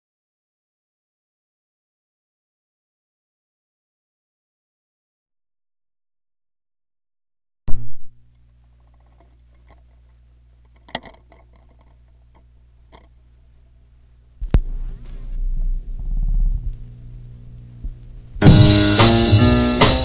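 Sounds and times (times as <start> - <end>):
amplifier hum: 7.7 - 20.0
record groove rumble and crackle: 7.7 - 20.0.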